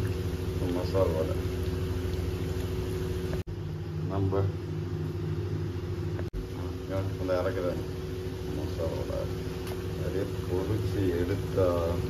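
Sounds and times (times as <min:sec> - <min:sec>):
food deep-frying in hot oil: 0:00.0 - 0:03.4.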